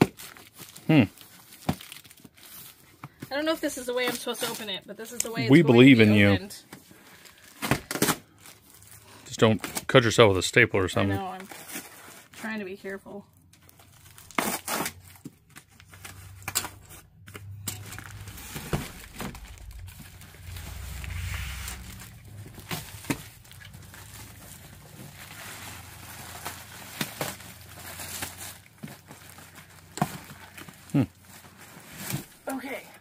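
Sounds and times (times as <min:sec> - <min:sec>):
plastic crinkling: 0:00.0 - 0:05.6, 0:13.5 - 0:32.8
cardboard tearing and scraping: 0:13.8 - 0:32.6.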